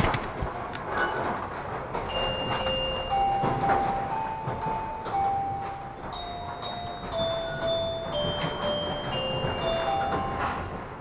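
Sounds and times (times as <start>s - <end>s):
train running noise: 0.0s - 11.0s
electronic chime melody: 2.1s - 11.0s.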